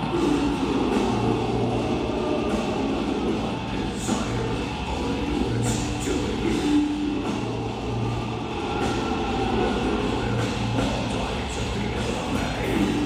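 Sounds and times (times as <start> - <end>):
bass guitar: 0.0 - 13.0
death metal band playing live: 0.0 - 13.0
drums: 0.0 - 13.0
heavy distorted guitars: 0.0 - 13.0.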